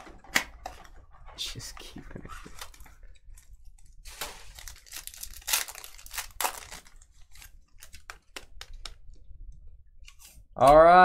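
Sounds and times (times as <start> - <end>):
wrapper tearing and crinkling: 4.0 - 8.1
cards clicking and tapping: 7.8 - 9.0.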